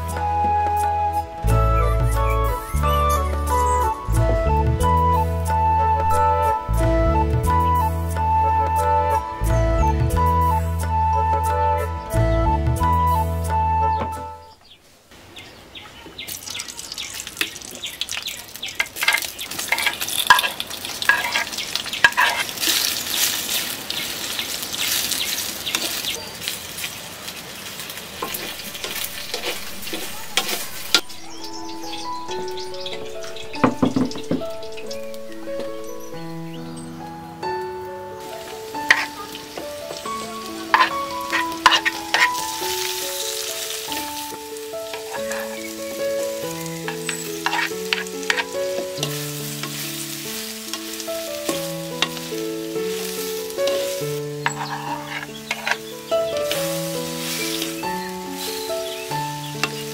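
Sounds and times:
background music melody: 0:00.0 - 0:14.8, 0:28.2 - 0:59.9
sausage sizzling in a pot: 0:16.2 - 0:36.8, 0:38.2 - 0:59.9
spoon clattering in a pot: 0:18.8 - 0:22.5.

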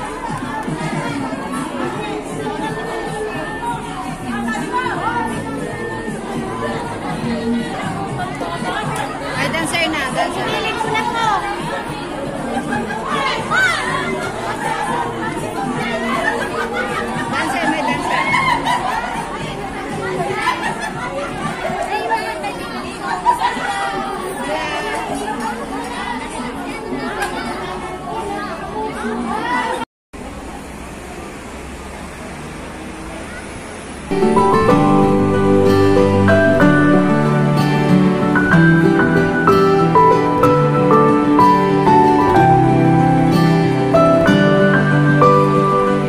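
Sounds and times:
women chatting: 0:00.0 - 0:29.8.

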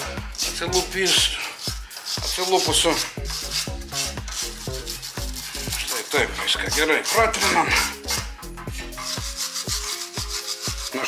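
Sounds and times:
background music with a beat: 0:00.0 - 0:11.0
wire brush scrubbing metal: 0:00.0 - 0:11.0.

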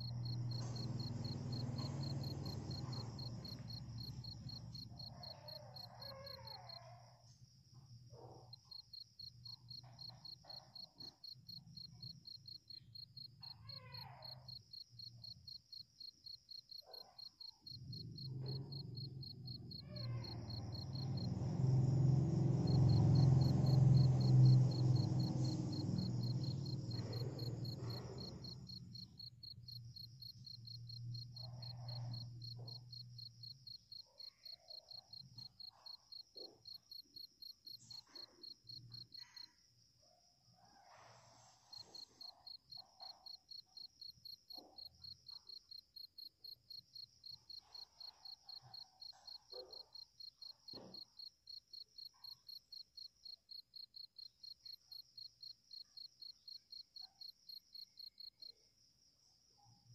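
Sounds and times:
insect trilling: 0:00.0 - 0:07.0, 0:08.7 - 0:39.4.

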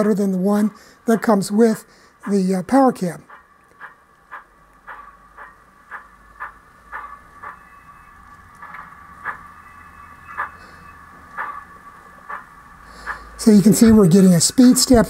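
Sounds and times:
faint steady whine: 0:00.0 - 0:15.0
model locomotive steam chuffs: 0:08.6 - 0:15.0.

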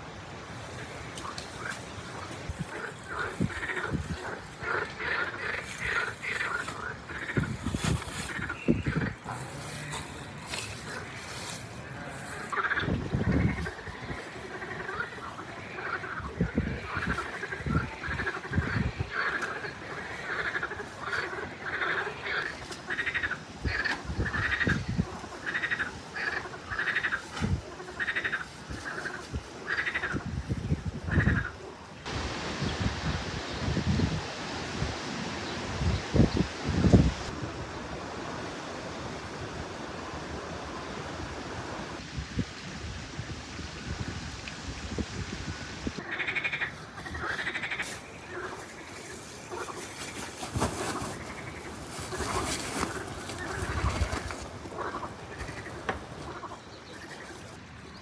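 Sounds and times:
frogs croaking: 0:00.0 - 0:32.8, 0:45.5 - 0:58.0
steady rushing hiss: 0:00.0 - 0:57.9.

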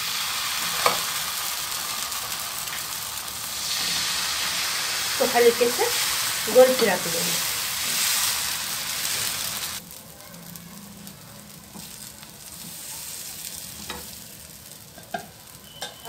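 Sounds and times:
batter sizzling on a griddle: 0:00.0 - 0:16.0.

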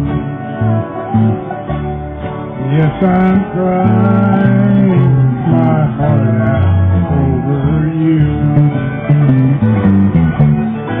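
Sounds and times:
country band playing guitars: 0:00.0 - 0:11.0.

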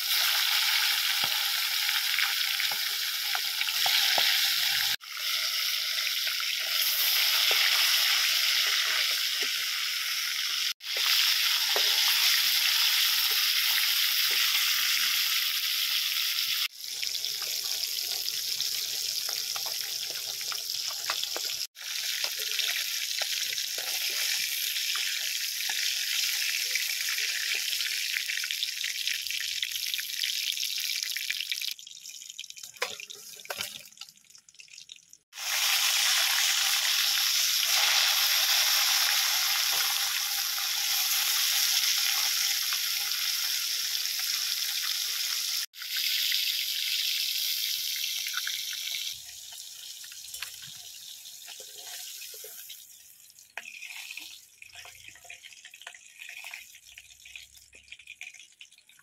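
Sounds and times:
fish sizzling in hot oil: 0:00.0 - 0:59.0.

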